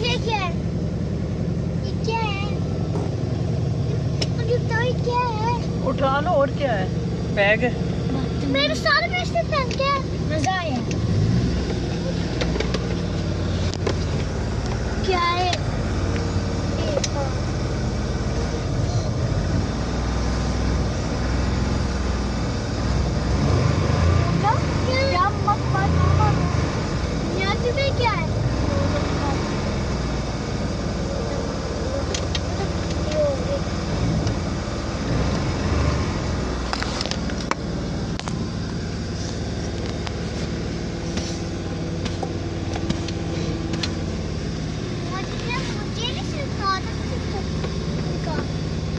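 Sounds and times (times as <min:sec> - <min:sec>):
car engine running inside cabin: 0:00.0 - 0:48.9.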